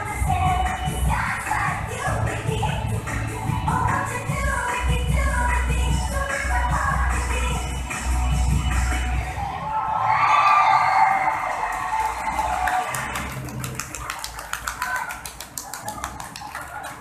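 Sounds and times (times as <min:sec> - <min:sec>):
pop song over loudspeakers: 0:00.0 - 0:10.4
audience clapping: 0:11.0 - 0:17.0.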